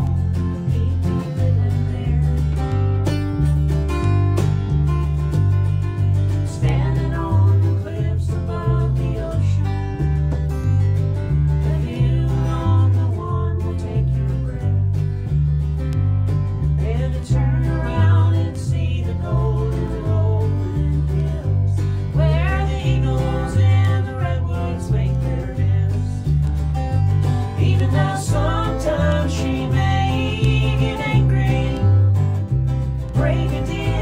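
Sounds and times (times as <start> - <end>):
person singing: 0.0 - 2.8, 6.4 - 10.0, 11.6 - 14.9, 16.8 - 26.3, 27.4 - 32.2, 33.1 - 34.0
acoustic guitar: 0.0 - 34.0
alternating bass line: 0.0 - 34.0
plucked stringed instrument: 0.0 - 34.0.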